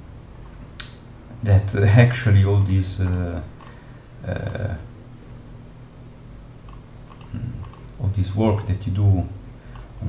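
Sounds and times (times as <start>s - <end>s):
computer mouse clicks: 2.6s - 3.8s, 6.7s - 8.7s, 9.7s - 9.9s.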